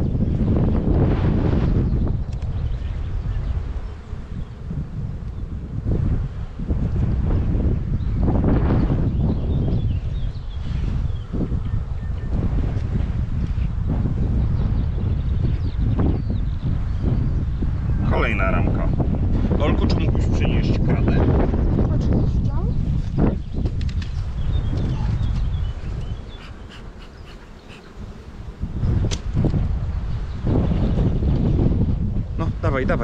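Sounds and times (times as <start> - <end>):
wind buffeting microphone: 0.0 - 33.0
honeybees buzzing: 24.2 - 29.0.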